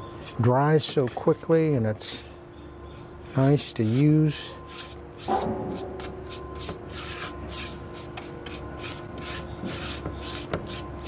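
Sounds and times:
brush swishing on wood: 3.4 - 10.8.

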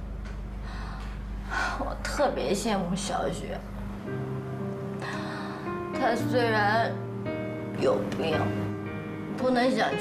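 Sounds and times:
steady low hum: 0.0 - 10.0
woman breathing softly: 0.6 - 1.8, 4.9 - 5.9
woman speaking: 1.5 - 3.7, 6.0 - 7.0, 7.7 - 8.7, 9.3 - 10.0.

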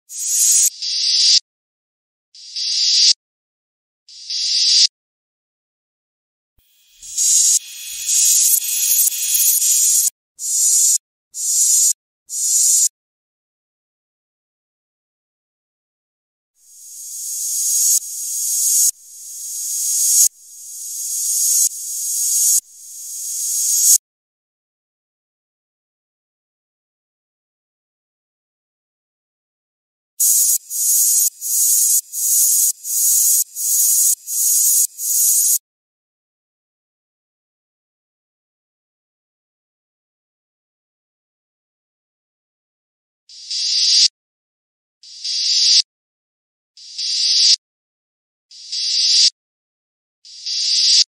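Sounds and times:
reversed hissing noise: 6.9 - 10.1, 30.2 - 35.6.

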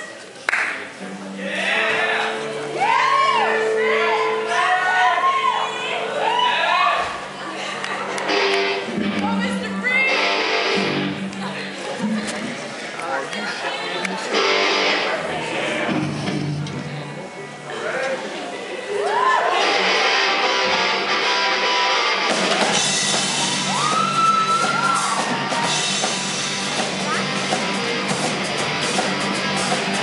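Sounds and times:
live band playing: 0.9 - 13.0, 13.7 - 17.8, 19.5 - 30.0
drums: 6.8 - 12.9, 14.2 - 17.6, 18.9 - 30.0
strummed electric guitar: 8.0 - 12.8, 14.0 - 17.7, 19.5 - 30.0.

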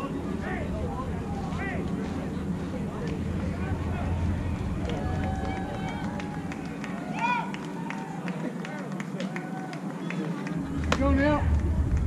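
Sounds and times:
distant chatter: 0.0 - 12.0.

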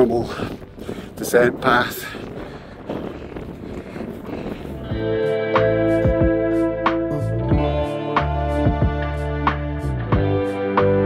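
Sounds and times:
wind on microphone: 0.0 - 8.0
guitar music: 4.8 - 11.0.

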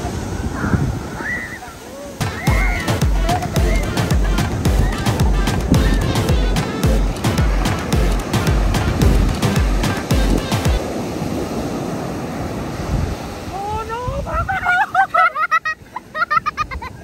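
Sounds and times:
surf breaking on beach: 0.0 - 17.0
music with steady beat: 2.2 - 10.8.

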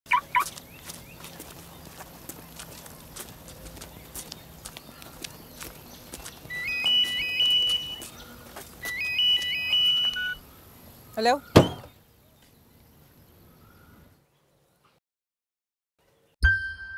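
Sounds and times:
electronic phone ringtone: 6.5 - 8.0, 8.9 - 10.4
short chirps: 8.8 - 10.4.

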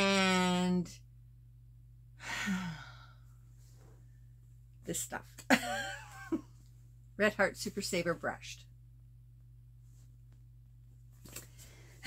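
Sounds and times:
woman sighing: 2.2 - 3.2.

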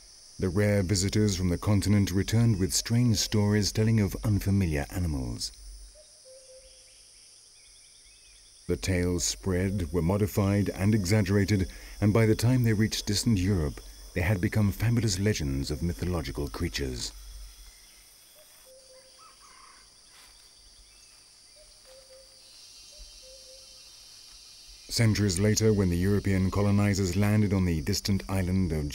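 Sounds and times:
faint chirps: 0.0 - 28.9
high-pitched insect drone: 0.0 - 28.9.

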